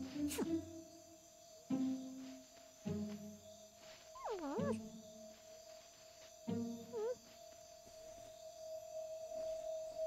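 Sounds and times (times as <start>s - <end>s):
sparse music with low notes: 0.0s - 10.0s.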